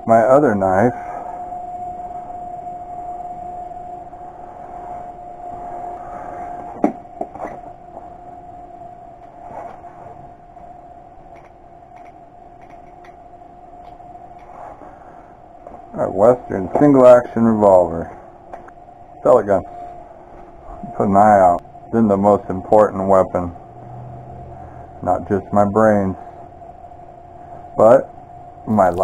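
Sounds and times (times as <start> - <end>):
machine hum: 0.0 - 29.0.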